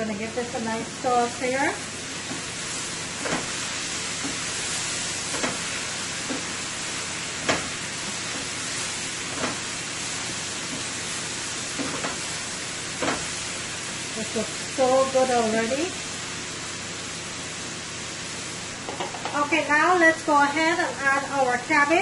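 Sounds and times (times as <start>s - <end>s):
vegetables sizzling in a pan: 0.0s - 22.0s
wooden spoon knocking on pan: 18.8s - 19.4s.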